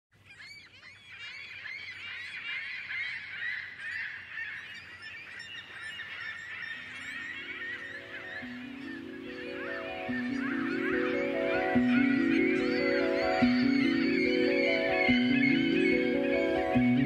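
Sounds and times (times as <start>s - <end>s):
flock of birds calling: 0.3s - 17.0s
low synthesizer notes: 8.0s - 17.0s.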